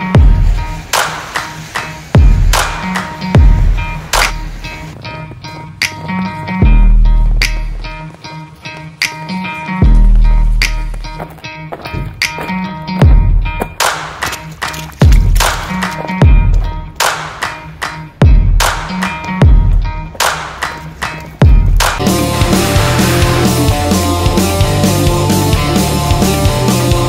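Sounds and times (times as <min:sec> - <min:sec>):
deep bass notes: 0:06.4 - 0:07.9, 0:09.8 - 0:11.1, 0:21.4 - 0:27.0.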